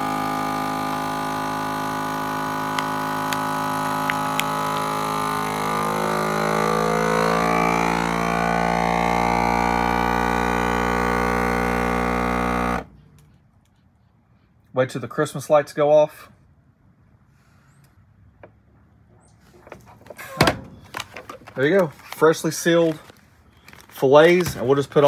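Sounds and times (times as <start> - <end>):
vacuum sealer pump droning: 0.0 - 13.0.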